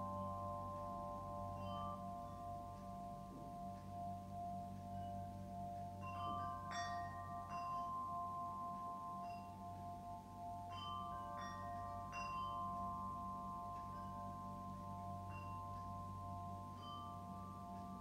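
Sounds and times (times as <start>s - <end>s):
ringing bell tones: 0.0s - 18.0s
steady low drone: 0.0s - 18.0s.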